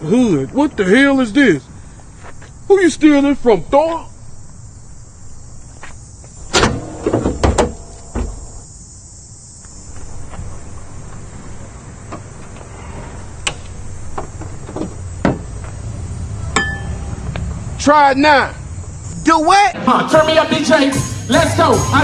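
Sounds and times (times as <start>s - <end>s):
low outdoor rumble: 0.0s - 9.0s, 9.7s - 19.2s
sharp knocks and bangs: 6.4s - 8.6s
metallic clank with a ring: 16.5s - 17.2s.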